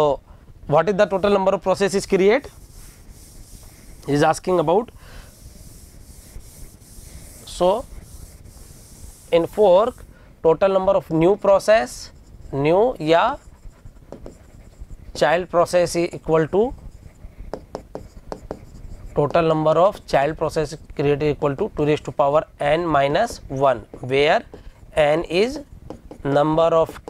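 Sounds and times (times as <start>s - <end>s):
hand rubbing on glass: 0.9s - 10.1s, 11.6s - 19.7s
pen tapping on touchscreen board: 14.1s - 14.4s, 17.5s - 18.6s, 25.9s - 26.4s.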